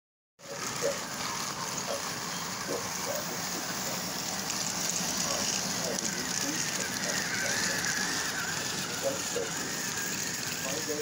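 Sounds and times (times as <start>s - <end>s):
toy train motors whirring: 0.4s - 11.0s
wheels on plastic rails: 0.4s - 11.0s.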